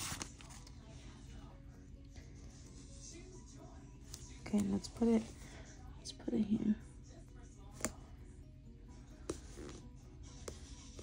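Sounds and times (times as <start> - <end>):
faint background music: 0.0 - 11.0
faint background talk: 0.0 - 11.0.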